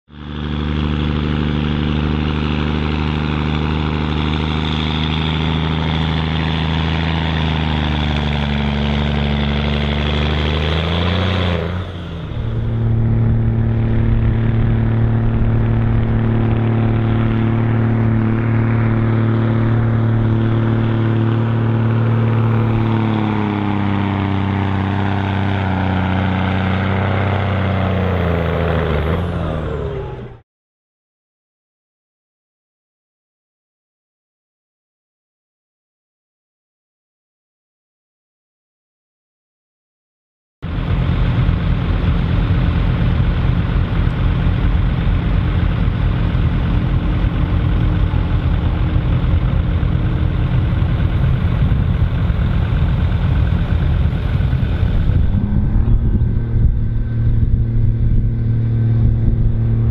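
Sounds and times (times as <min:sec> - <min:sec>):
diesel truck engine under load: 0:00.1 - 0:30.4, 0:40.6 - 0:59.9.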